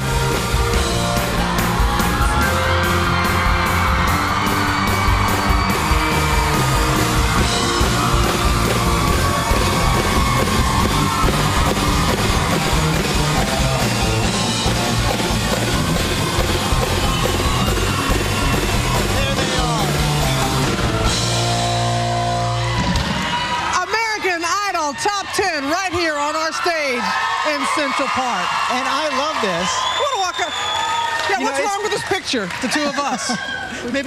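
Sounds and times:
band playing rock music: 0.0 - 23.8
crowd cheering and yelling: 0.0 - 34.0.

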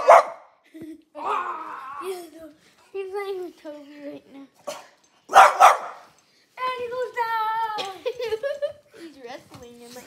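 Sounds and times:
dog barking: 0.0 - 0.5, 4.7 - 6.1.

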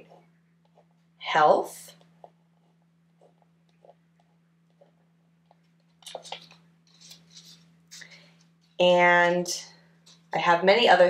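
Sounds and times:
paper rustling: 5.4 - 8.8.

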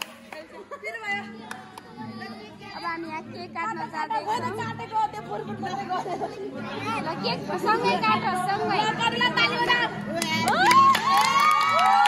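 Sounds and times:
children cheering and screaming: 10.4 - 12.0.

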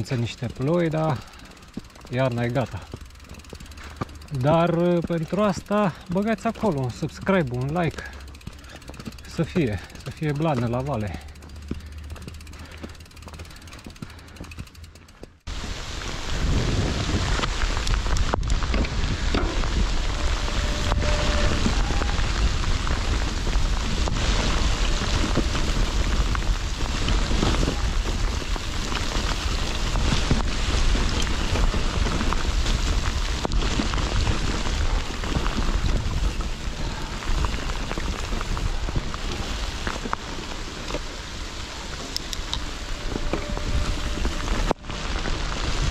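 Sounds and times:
bike riding on dry trail: 0.0 - 45.9
bike tyres rushing through mud: 0.0 - 45.9
wind rumbling on microphone: 15.4 - 45.9.

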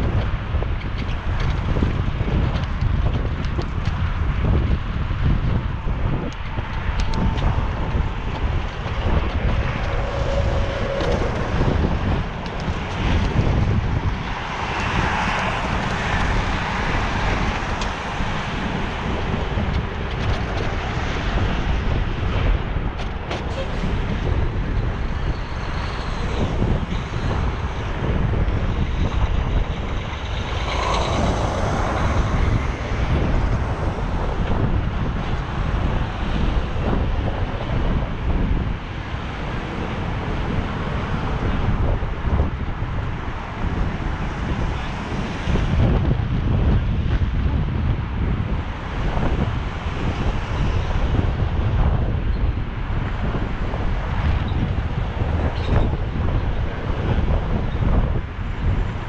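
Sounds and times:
city traffic: 0.0 - 59.0
wind buffeting microphone: 0.0 - 59.0.

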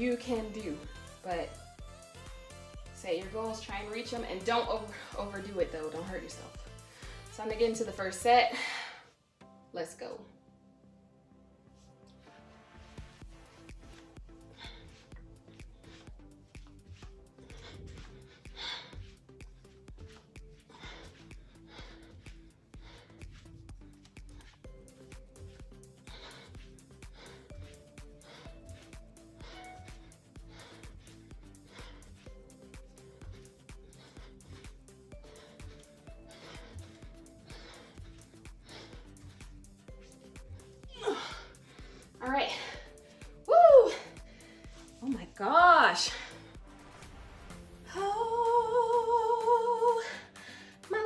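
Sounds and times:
quiet background music: 0.0 - 51.0.

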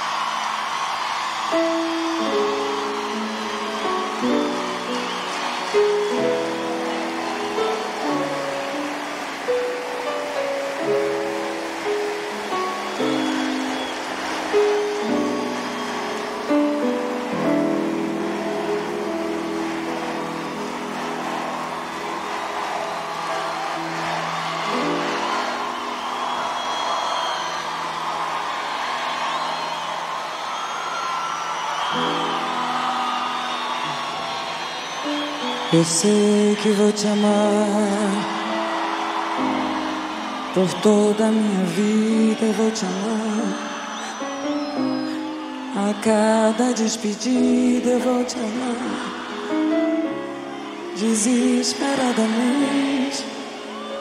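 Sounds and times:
large crowd noise: 0.0 - 54.0
grand piano playing slow ballad: 1.4 - 30.4, 31.4 - 54.0.

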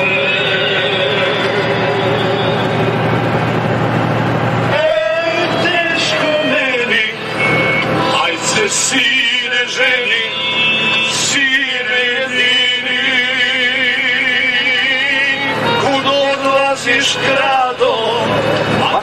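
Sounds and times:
man singing along: 0.0 - 2.9, 4.7 - 19.0
recorded folk song: 0.0 - 3.7, 4.6 - 19.0
truck engine running: 0.0 - 19.0.

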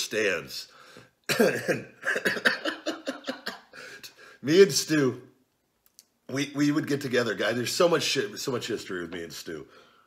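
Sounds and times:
man coughing: 1.3 - 4.0
laughter: 2.1 - 3.8.

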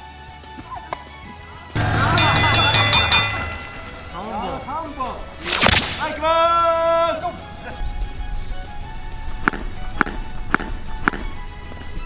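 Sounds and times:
steady held note: 1.8 - 5.6.

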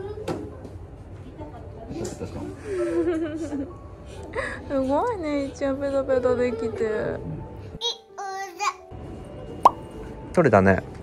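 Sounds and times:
toddler babbling: 7.8 - 8.8.

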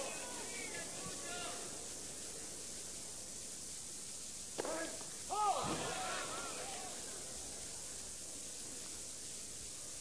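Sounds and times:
background hiss: 0.0 - 10.0.

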